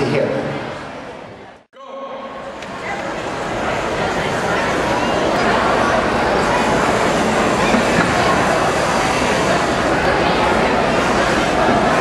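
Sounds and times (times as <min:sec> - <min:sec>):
crowd din in gymnasium: 0:00.0 - 0:12.0.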